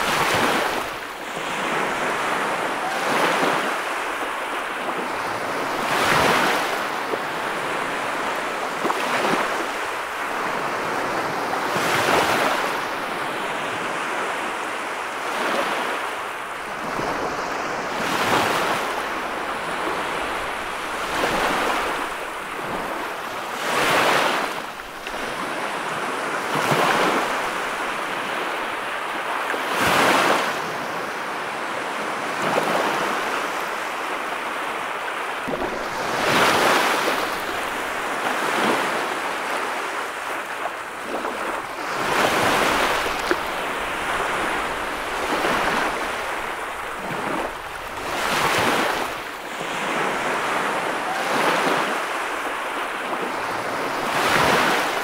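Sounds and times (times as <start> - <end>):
ocean surf breaking on beach: 0.0 - 55.0.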